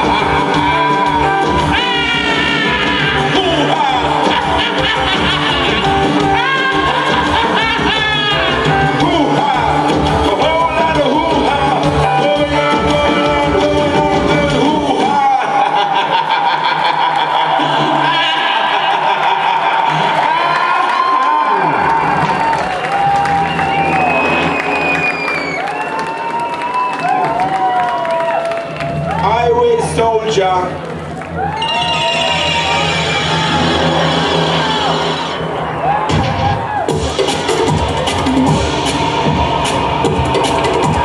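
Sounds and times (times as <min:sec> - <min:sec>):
live band sustained note: 0:00.0 - 0:14.5.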